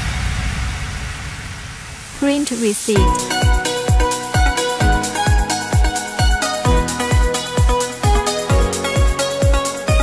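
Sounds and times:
white-noise wash: 0.0 - 3.1
low rumble: 0.0 - 3.2.

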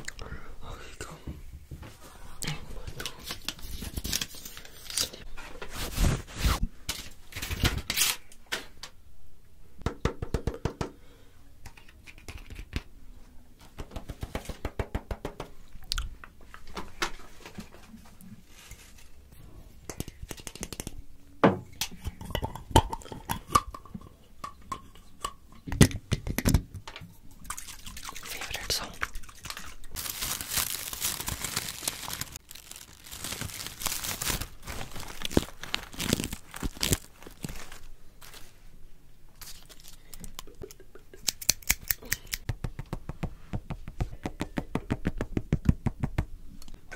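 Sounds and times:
paper crinkling and rustling: 2.8 - 8.3, 29.5 - 38.7, 39.4 - 40.2.

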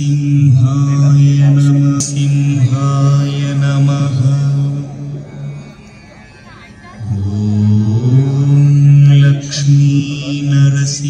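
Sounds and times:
deep male voice chanting: 0.0 - 5.7, 7.0 - 11.0.

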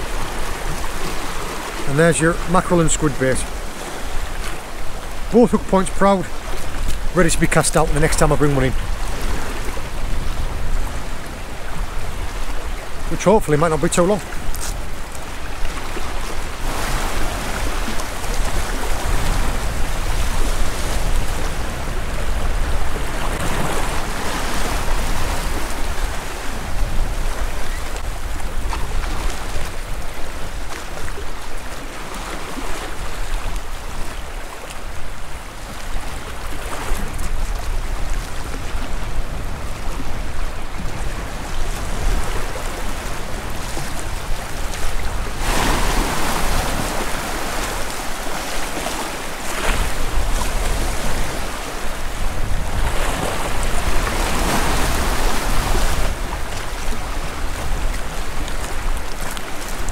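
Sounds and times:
sea waves washing over rocks: 0.0 - 59.9
wind rumbling on microphone: 6.3 - 13.2, 14.2 - 59.9.

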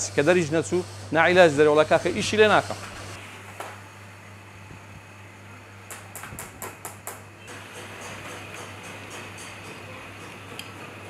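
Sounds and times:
low workshop hum: 0.0 - 11.0.

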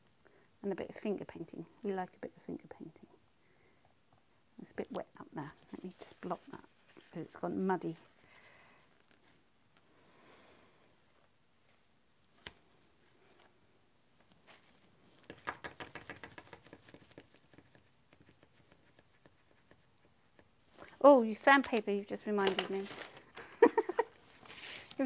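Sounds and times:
tools tapping on paper: 15.2 - 20.5.

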